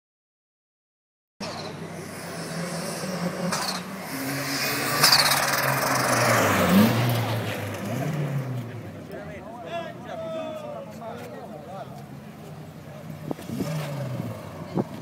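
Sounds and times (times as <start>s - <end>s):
car accelerating and passing: 1.4s - 9.4s, 12.6s - 15.0s.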